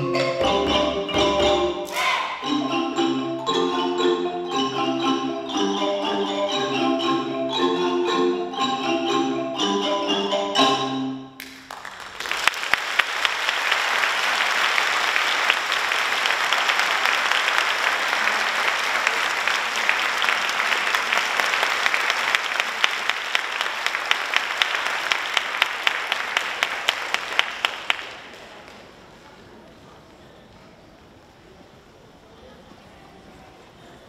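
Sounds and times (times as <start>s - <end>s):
xylophone ensemble notes: 0.0s - 11.4s
audience applauding: 11.4s - 28.9s.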